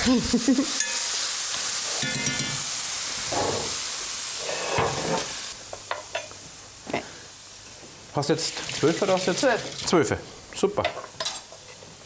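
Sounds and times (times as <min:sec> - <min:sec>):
vegetables sizzling in a pan: 0:00.0 - 0:12.0
spatula scraping a pan: 0:04.4 - 0:05.4.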